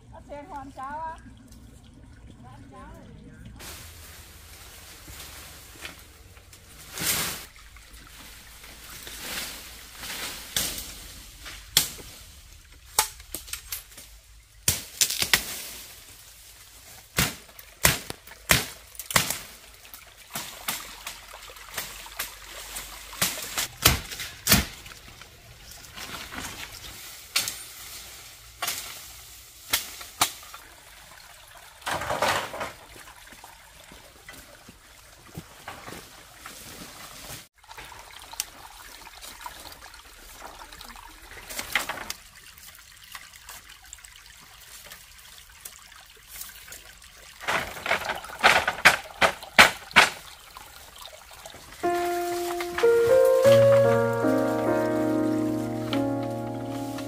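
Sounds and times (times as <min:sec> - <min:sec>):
stream trickling over rocks: 0:00.1 - 0:15.2, 0:15.8 - 0:28.5, 0:29.2 - 0:36.5, 0:37.5 - 0:52.1
dry leaves rustling: 0:03.6 - 0:12.7, 0:13.6 - 0:17.2, 0:22.5 - 0:30.5, 0:51.8 - 0:57.0.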